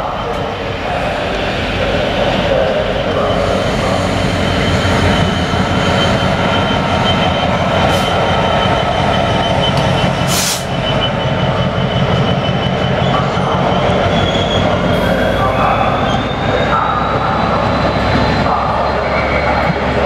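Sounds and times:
diesel locomotive engine droning: 0.0 - 20.0
high wheel squeal: 0.9 - 20.0.

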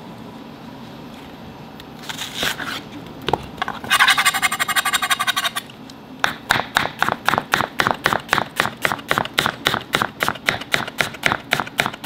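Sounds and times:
knife cutting onion: 6.3 - 12.0.

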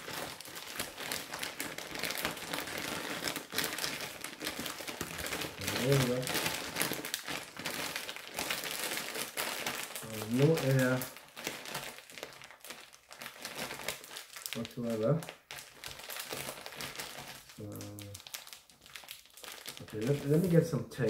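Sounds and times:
plastic bag crinkling: 0.0 - 21.0.

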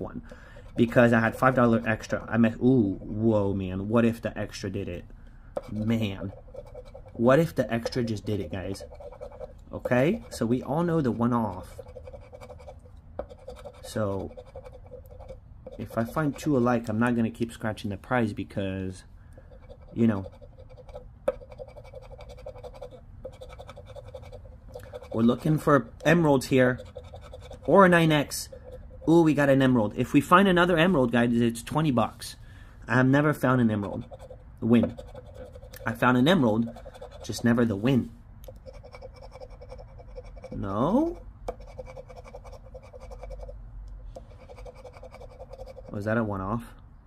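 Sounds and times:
scratching a lottery ticket: 5.7 - 16.9, 19.4 - 29.3, 33.5 - 43.6, 44.2 - 46.1.

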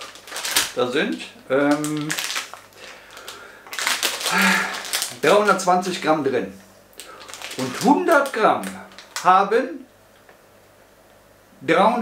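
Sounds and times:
plastic bag crinkling: 0.0 - 6.1, 6.9 - 9.4.

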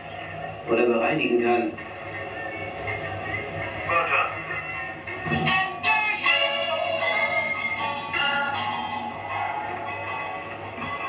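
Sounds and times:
background music: 0.0 - 11.0
indistinct voices: 0.0 - 11.0.

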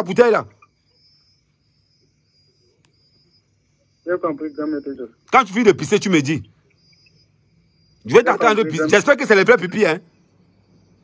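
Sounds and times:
faint click: 2.8 - 3.0.

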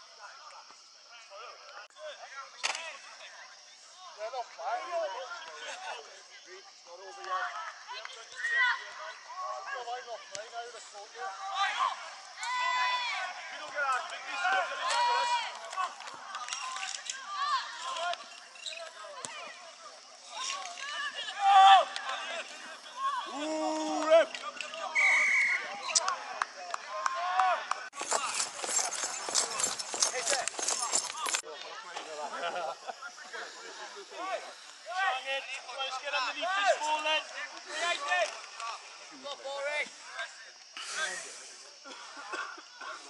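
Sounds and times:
people shouting and calling: 2.0 - 43.0.

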